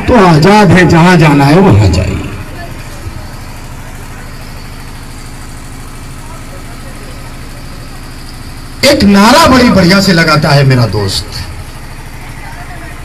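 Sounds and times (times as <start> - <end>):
man's amplified voice: 0.0 - 2.6, 8.8 - 11.7
engine idling: 0.0 - 13.0.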